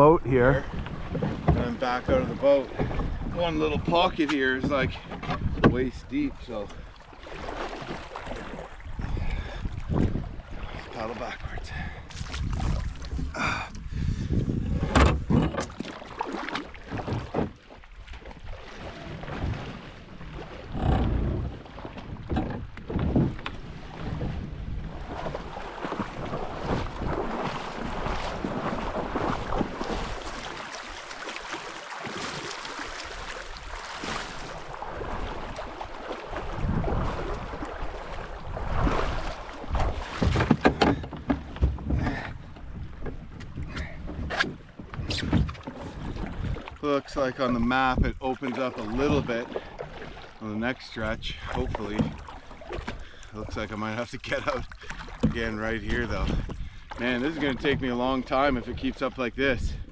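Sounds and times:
splashing of wading: 0:00.0 - 0:59.9
river water rushing: 0:25.5 - 0:40.2.

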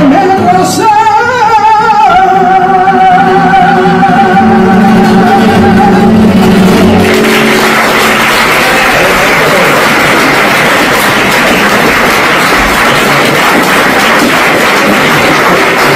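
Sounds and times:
audience applauding: 0:05.1 - 0:15.9.

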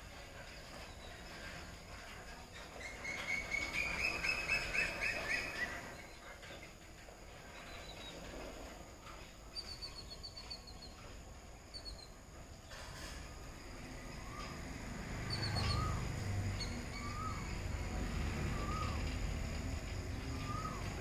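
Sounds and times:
birds chirping: 0:00.2 - 0:21.0.

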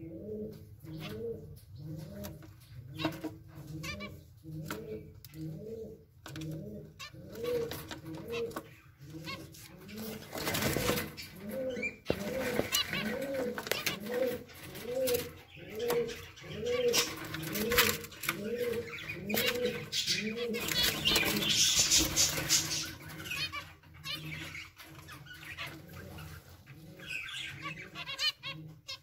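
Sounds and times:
dove cooing: 0:00.0 - 0:29.0
finches chirping: 0:11.0 - 0:29.0.

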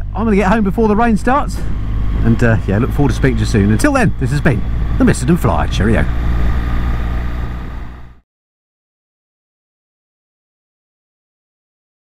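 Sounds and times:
motorcycle engine hum: 0:00.0 - 0:08.2
road and wind noise: 0:00.0 - 0:08.2.

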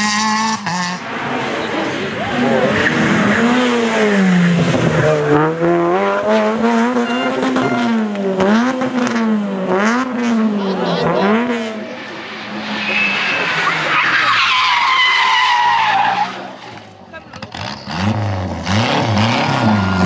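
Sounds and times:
rally car engine revving: 0:00.0 - 0:20.0.

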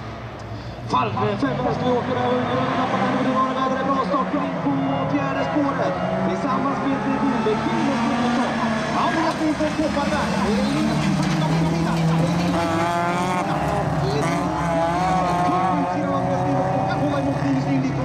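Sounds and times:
race car engines revving: 0:00.0 - 0:18.0
commentator over public address: 0:00.8 - 0:18.0.

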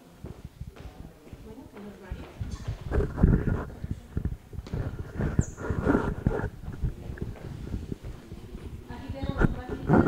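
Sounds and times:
indistinct voices: 0:00.8 - 0:10.0.

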